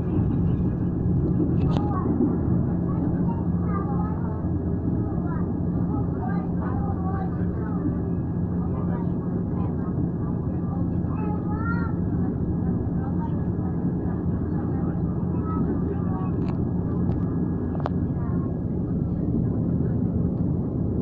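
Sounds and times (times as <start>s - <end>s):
constant low hum: 0.0s - 21.0s
people talking: 0.0s - 21.0s
train rumbling over steel bridge: 0.0s - 21.0s.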